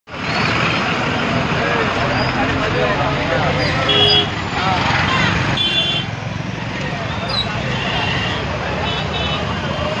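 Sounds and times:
crowd talking: 0.1s - 10.0s
roadside traffic: 0.1s - 10.0s.

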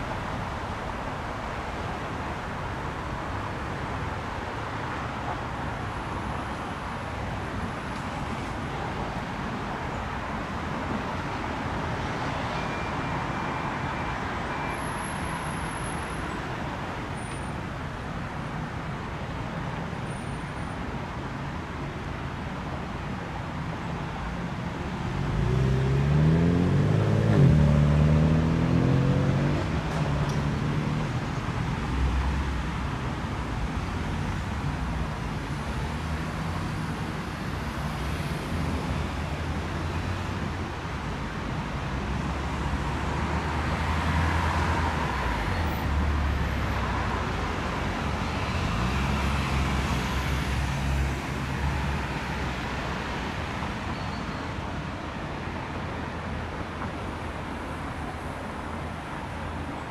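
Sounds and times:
passing cars rumbling: 24.9s - 53.9s.

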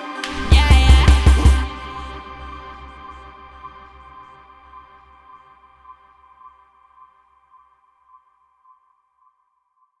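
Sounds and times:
held synth chord: 0.0s - 6.0s.

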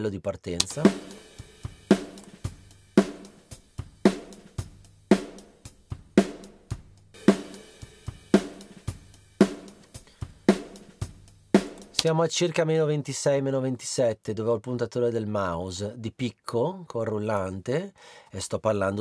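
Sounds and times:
drum kit playing a groove: 0.6s - 12.2s.

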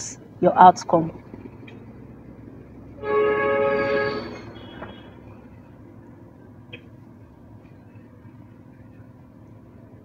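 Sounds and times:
horn-like held chord: 3.0s - 4.7s.

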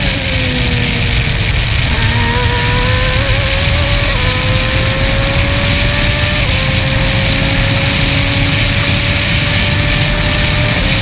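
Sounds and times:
air and road noise: 0.0s - 11.0s
race car engine steady note: 0.0s - 11.0s.

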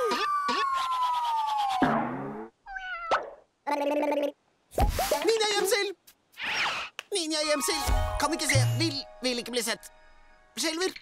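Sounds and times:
squeaky cat-like cries: 0.0s - 1.8s, 2.6s - 3.4s.

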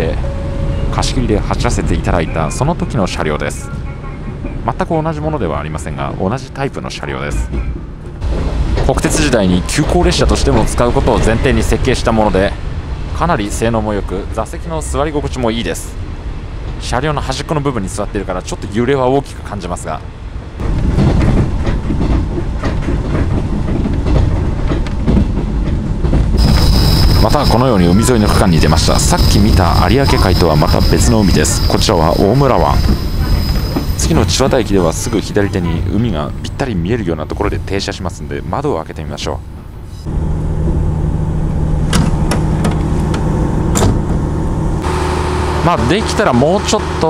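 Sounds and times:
railcar engine humming: 0.0s - 47.0s
train low rumble: 0.0s - 47.0s
wheels clicking over rail joints: 20.6s - 26.4s.

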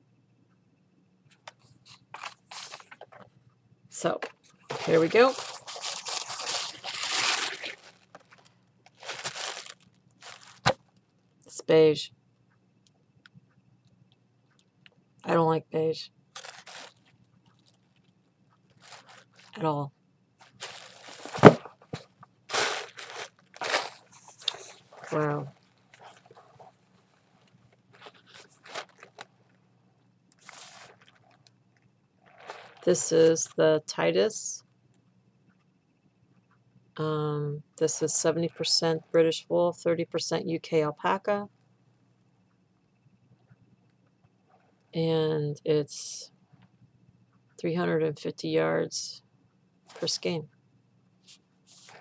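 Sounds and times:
tissue paper crinkling: 1.9s - 3.0s, 4.7s - 10.8s, 16.4s - 17.9s, 18.7s - 19.6s, 20.4s - 29.3s, 30.4s - 31.4s, 32.2s - 32.9s, 51.3s - 52.0s.

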